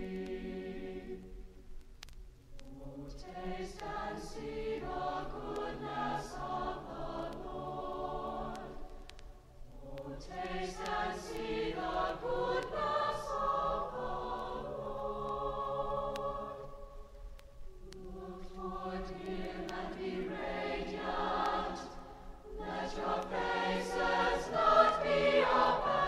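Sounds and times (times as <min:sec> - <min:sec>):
choir singing: 0:00.0 - 0:01.5, 0:02.6 - 0:17.1, 0:17.7 - 0:26.0.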